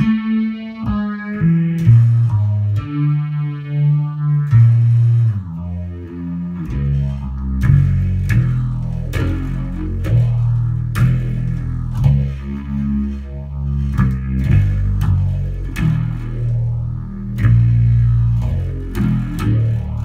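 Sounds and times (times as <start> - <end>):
distorted electric bass chords: 0.0 - 20.0.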